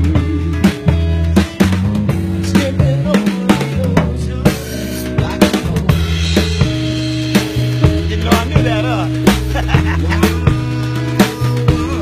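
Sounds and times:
bass line: 0.0s - 12.0s
drum kit with snare and cymbals: 0.0s - 12.0s.

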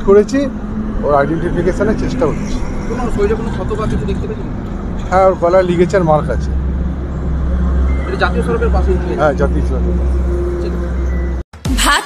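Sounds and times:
man speaking: 0.0s - 4.3s, 5.0s - 6.6s, 8.3s - 10.0s
low rumble of road traffic: 0.0s - 11.4s.

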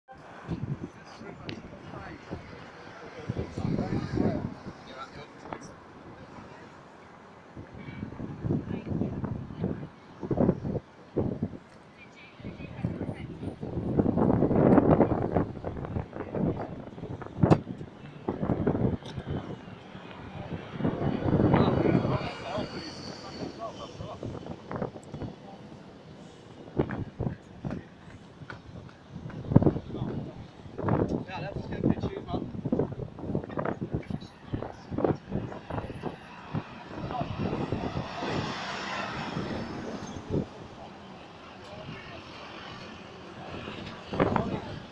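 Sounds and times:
bus engine and road noise: 0.1s - 44.9s
people chattering: 0.1s - 44.9s
engine noise: 34.0s - 44.9s.

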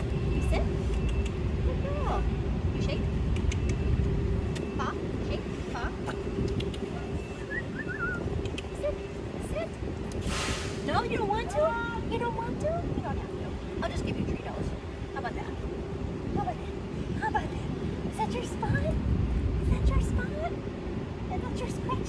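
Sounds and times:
low mechanical rumble: 0.0s - 22.0s
brief hiss: 10.2s - 10.9s.

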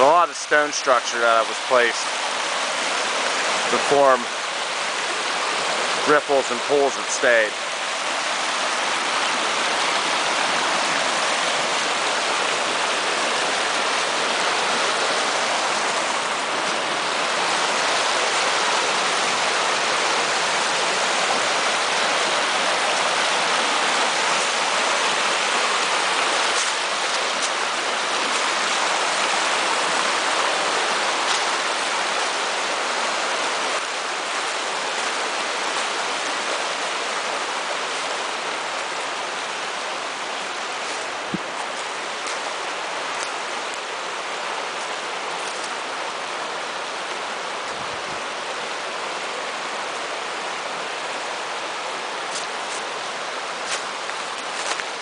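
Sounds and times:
brook rushing over stones: 0.0s - 50.1s, 50.7s - 55.0s.

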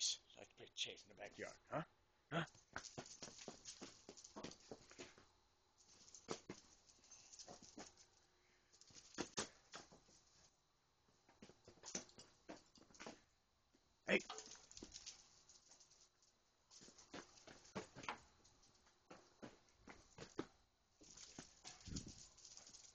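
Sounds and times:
footfalls on concrete: 2.5s - 5.3s, 5.9s - 8.0s, 8.8s - 10.2s, 16.7s - 22.9s.

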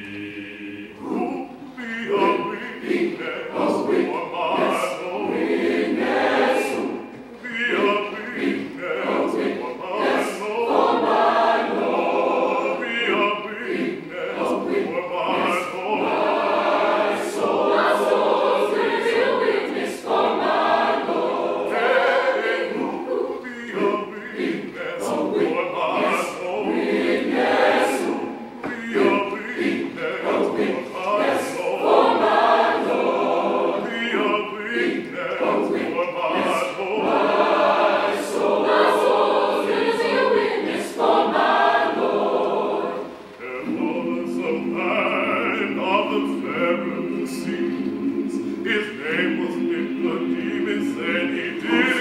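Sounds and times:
choir singing gospel: 0.0s - 52.0s.

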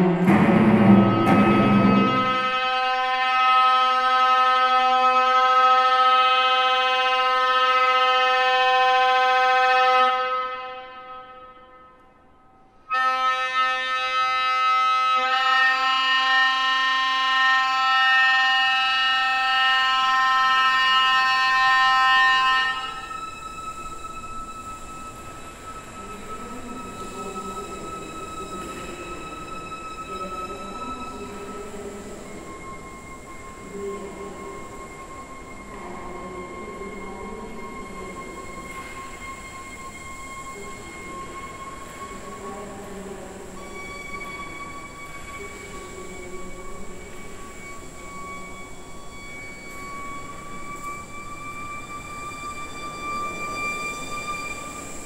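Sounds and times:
clarinet holding long notes: 0.0s - 12.2s, 12.9s - 55.0s
thin steady high tone: 18.6s - 55.0s.

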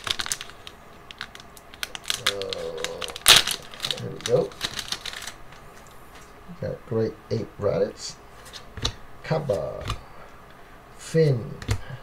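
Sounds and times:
foil wrapper crinkling: 0.0s - 6.3s.

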